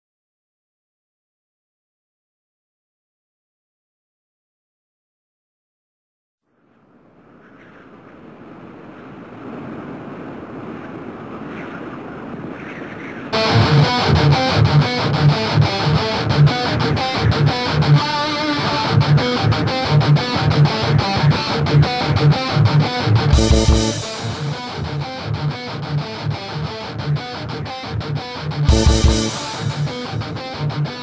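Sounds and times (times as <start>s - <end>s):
hazy intro: 13.4s - 27.6s, 28.3s - 31.0s
distorted electric guitars: 13.4s - 31.0s
steady drum beat: 23.3s - 25.0s, 28.7s - 30.6s.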